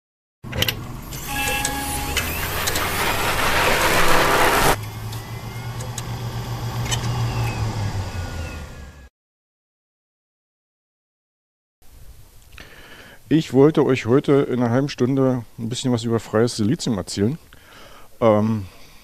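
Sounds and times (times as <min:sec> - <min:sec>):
low steady drone: 0:01.0 - 0:06.9
noisy swell with clicks: 0:01.1 - 0:06.2.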